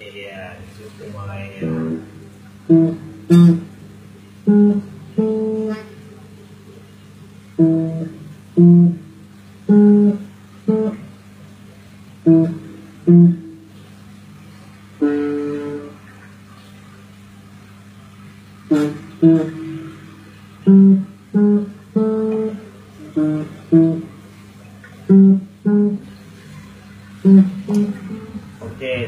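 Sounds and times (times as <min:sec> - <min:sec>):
guitar plucked notes: 0:01.5 - 0:03.8, 0:04.4 - 0:06.0, 0:07.6 - 0:11.2, 0:12.2 - 0:13.9, 0:15.0 - 0:16.2, 0:18.7 - 0:24.2, 0:24.9 - 0:26.3, 0:27.2 - 0:28.5.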